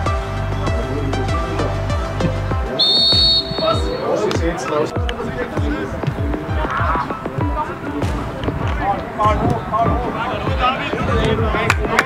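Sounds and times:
high whistle blast: 0:02.8 - 0:04.2.

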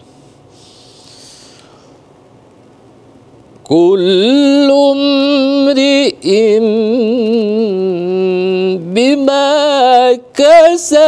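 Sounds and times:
person breathing in: 0:00.0 - 0:02.0.

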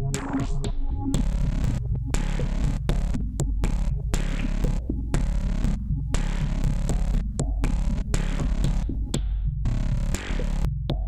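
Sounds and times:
deep synth bass: 0:00.0 - 0:11.0.

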